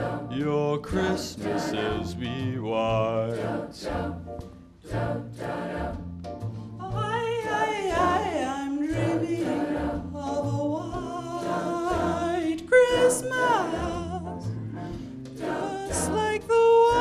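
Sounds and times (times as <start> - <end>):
choir singing: 0.0 - 17.0.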